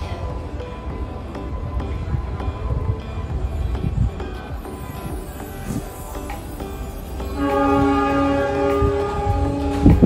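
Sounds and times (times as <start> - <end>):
sustained music chord: 6.8 - 9.9.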